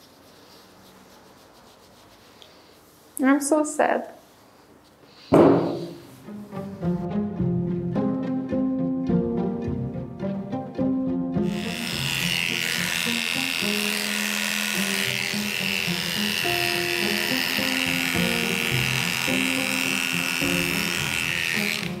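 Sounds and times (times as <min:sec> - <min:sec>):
background music: 0:05.9 - 0:22.0
electric clippers buzzing: 0:11.4 - 0:22.0.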